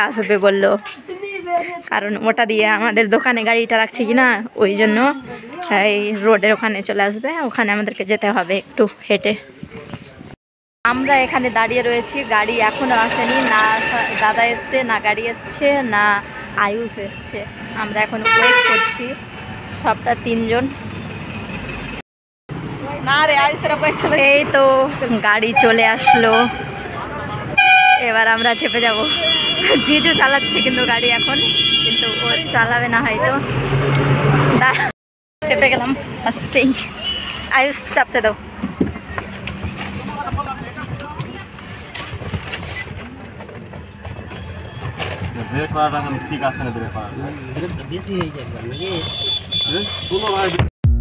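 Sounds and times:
highway traffic noise: 0.0s - 50.7s
high steady tone: 10.9s - 18.2s
engine and road hum: 10.9s - 50.7s
voices talking: 22.8s - 42.0s, 45.3s - 50.6s.

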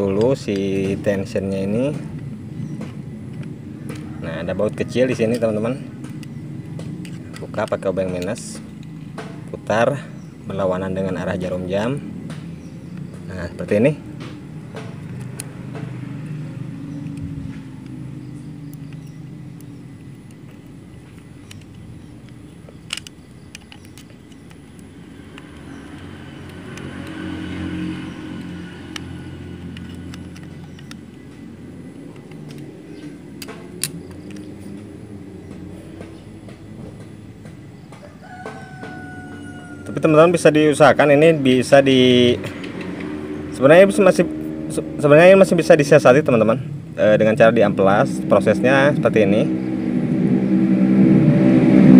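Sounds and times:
traffic rumble: 0.0s - 51.9s
screwdriver metal clicks: 18.6s - 27.2s, 29.7s - 31.4s, 32.2s - 34.8s.

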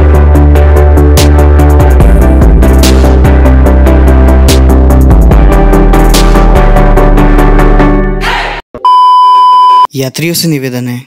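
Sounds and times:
background music: 0.0s - 8.6s
loud electronic beep: 8.8s - 9.9s.

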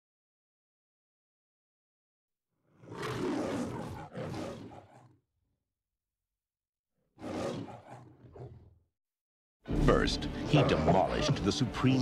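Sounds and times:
lion roaring: 2.6s - 5.2s, 7.2s - 8.8s.

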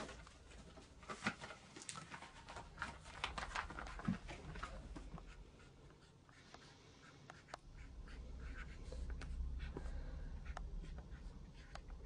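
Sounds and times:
pen scratching on paper: 5.2s - 12.0s.

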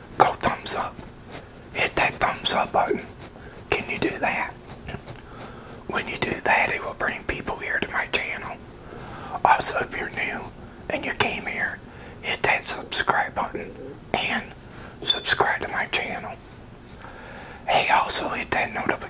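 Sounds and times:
man whispering: 0.2s - 1.0s, 1.7s - 4.6s, 5.8s - 8.6s, 9.4s - 16.4s, 17.7s - 19.0s.

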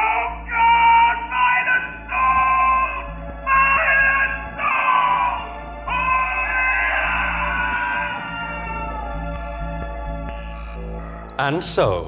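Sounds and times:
loud music swells: 0.0s - 11.4s
low drone: 0.0s - 11.4s.

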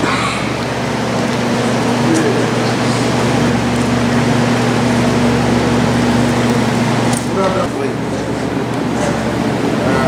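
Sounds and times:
indistinct voices: 0.0s - 3.1s
low hum: 0.0s - 7.3s.

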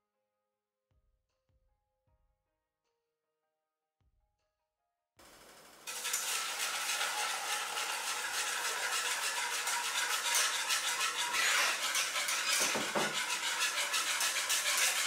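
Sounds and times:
whisk beating liquid in saucepan: 5.2s - 15.0s.

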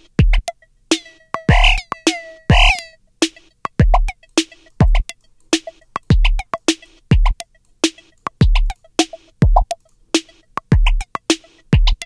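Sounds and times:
electronic drum loop: 0.0s - 12.0s
sharp clicky hi-hat hits: 0.0s - 12.0s
metallic synth blips: 1.0s - 3.0s.

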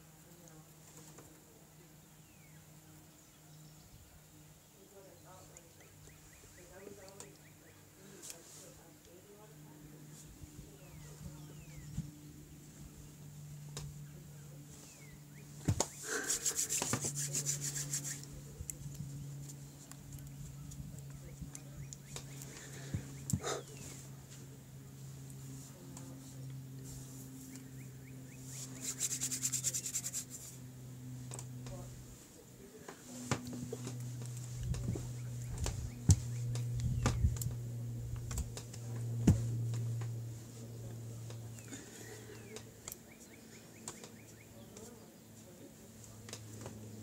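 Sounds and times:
steady low hum: 0.0s - 47.0s
palms rubbing together: 14.7s - 20.5s, 28.4s - 30.7s.

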